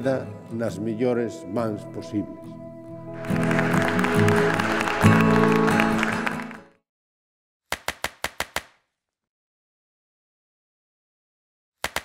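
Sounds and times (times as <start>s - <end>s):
closing music: 0.4s - 6.8s
applause: 3.2s - 6.8s, 7.8s - 8.7s.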